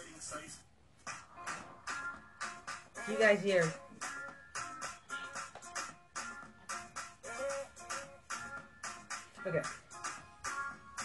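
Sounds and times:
music with a beat from laptop speakers: 0:00.0 - 0:11.0.

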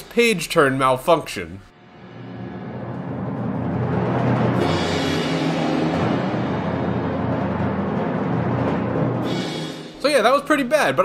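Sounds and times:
timpani: 0:01.8 - 0:10.5
orchestral music: 0:01.8 - 0:10.9.

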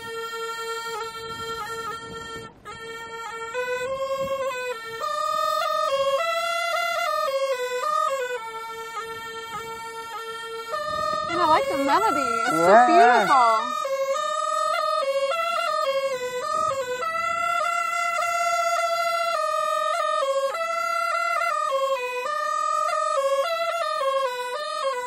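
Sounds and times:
bamboo flute melody: 0:00.0 - 0:25.0.

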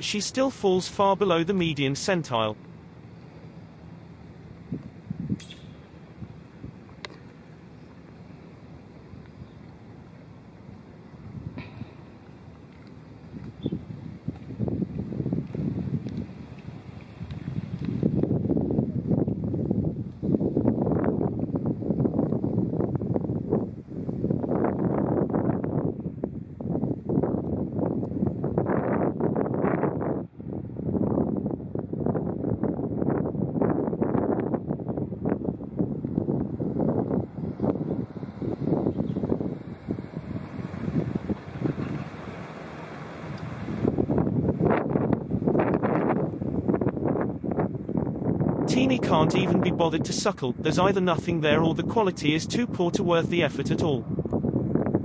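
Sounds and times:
wind buffeting microphone: 0:02.5 - 0:52.8, 0:53.4 - 0:55.0.

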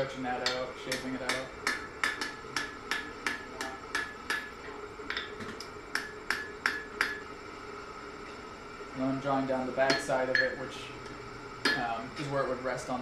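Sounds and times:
hammer striking iron on anvil: 0:00.0 - 0:07.3, 0:09.8 - 0:10.6, 0:11.6 - 0:12.0.

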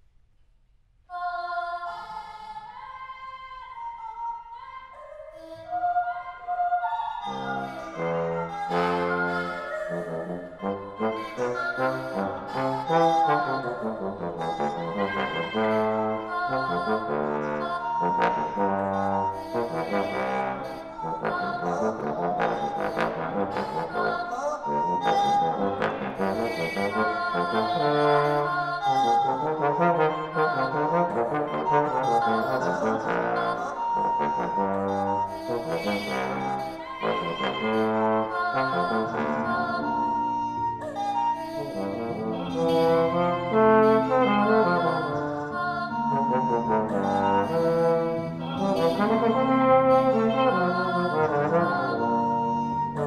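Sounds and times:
bass trombone playing: 0:07.2 - 0:40.5, 0:41.3 - 0:53.0.

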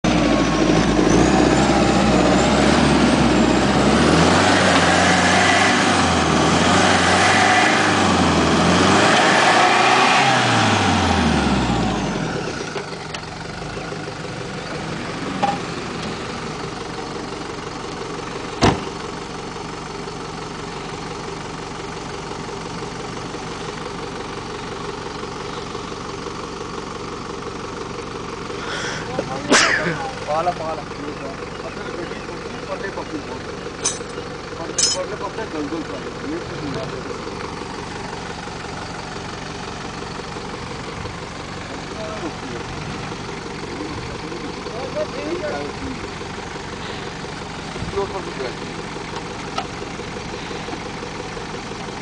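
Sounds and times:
engine revving: 0:00.0 - 0:12.8.

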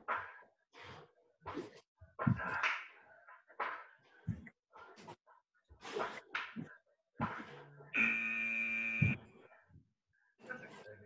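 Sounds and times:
timer buzzer tone: 0:08.0 - 0:09.2.

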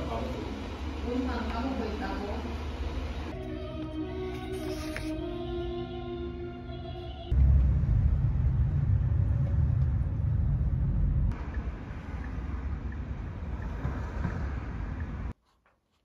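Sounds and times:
street ambience hiss: 0:00.0 - 0:03.4, 0:07.4 - 0:15.3
road and engine rumble in car: 0:07.3 - 0:15.4.

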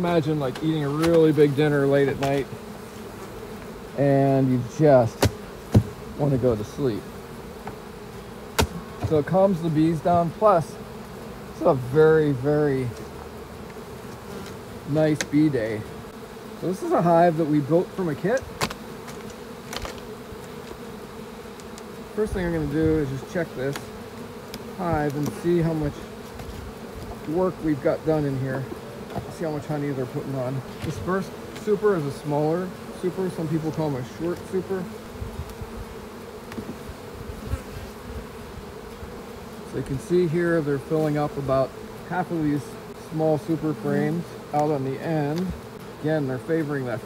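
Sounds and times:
honeybees buzzing: 0:00.0 - 0:47.0
faint knocks of wooden frames: 0:07.6 - 0:07.9, 0:08.5 - 0:09.5, 0:28.5 - 0:29.7, 0:36.4 - 0:36.9.

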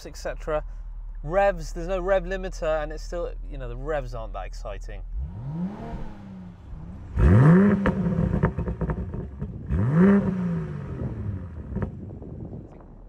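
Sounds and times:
car engine revving: 0:00.0 - 0:12.8
exhaust pops and crackles: 0:06.6 - 0:13.0.

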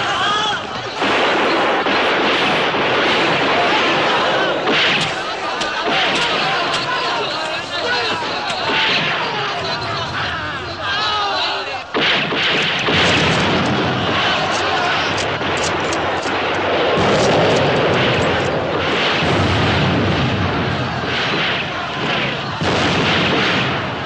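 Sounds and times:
explosions: 0:00.8 - 0:10.3, 0:11.9 - 0:24.0
rifle fire: 0:01.0 - 0:07.1, 0:11.9 - 0:24.0.

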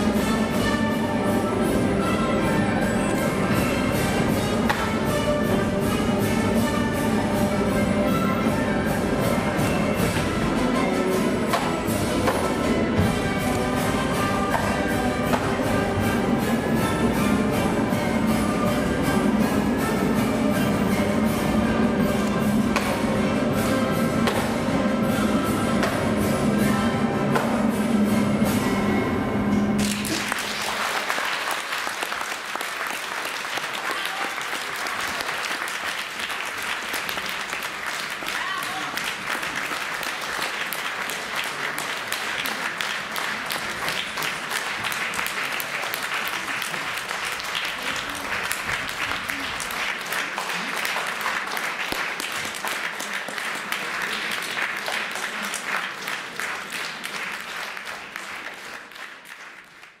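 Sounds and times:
audience applauding: 0:29.8 - 1:00.0.

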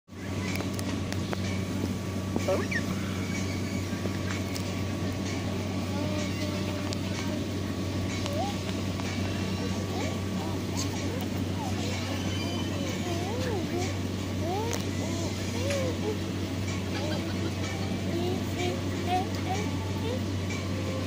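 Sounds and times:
steady low hum: 0:00.1 - 0:21.0.

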